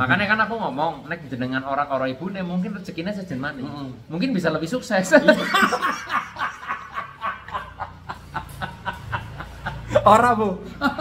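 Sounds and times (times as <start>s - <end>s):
men laughing: 5.1s - 11.0s.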